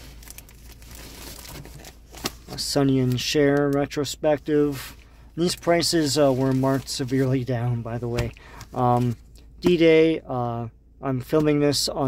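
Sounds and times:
plastic bags crinkling: 0.0 - 2.6.

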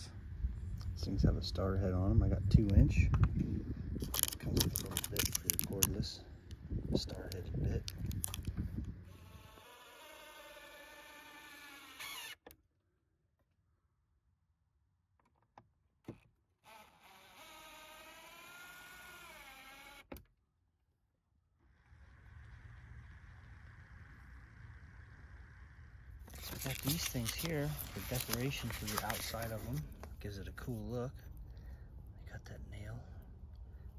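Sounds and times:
cordless drill driving screws: 9.1 - 12.5, 16.6 - 20.1
dull steady hum: 21.7 - 33.9.

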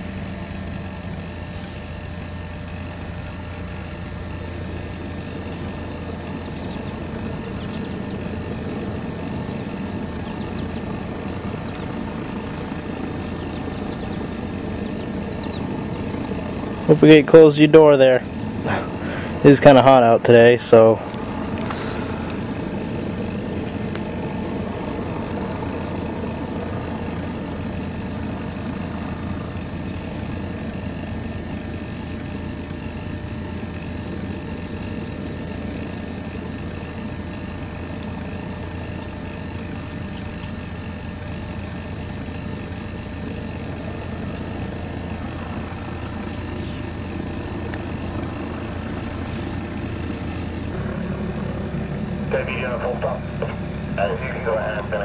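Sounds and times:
steady engine-like hum: 0.0 - 55.0
insects chirping: 0.4 - 55.0.

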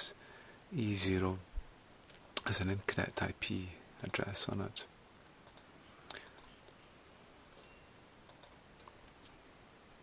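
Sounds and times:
faint computer mouse clicks: 5.4 - 6.6, 8.3 - 9.2.

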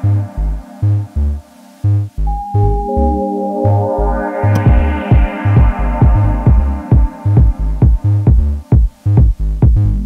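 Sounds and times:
pulsing synth bass: 0.0 - 10.0
sustained synth chord: 2.2 - 7.8
kick drum: 4.6 - 10.0.

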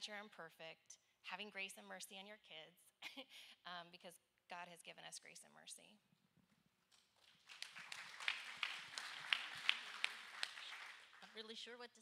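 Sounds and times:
light applause: 7.2 - 11.5.

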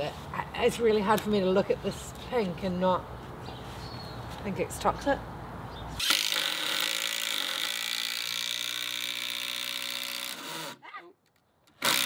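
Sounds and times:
cordless drill driving screw: 6.0 - 10.8, 11.7 - 12.0.

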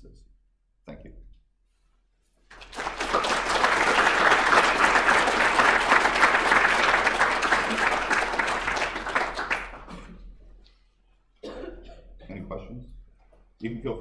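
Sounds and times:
audience applauding: 2.5 - 10.2.

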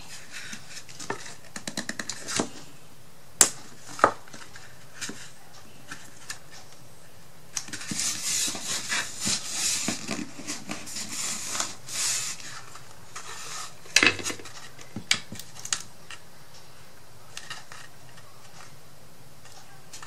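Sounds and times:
hands rubbing paper: 7.7 - 13.9.

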